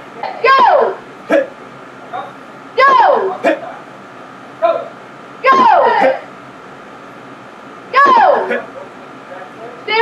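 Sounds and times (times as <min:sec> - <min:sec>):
martial arts shouts: 0:00.4 - 0:01.5, 0:02.8 - 0:03.6, 0:05.4 - 0:06.3, 0:07.9 - 0:08.7.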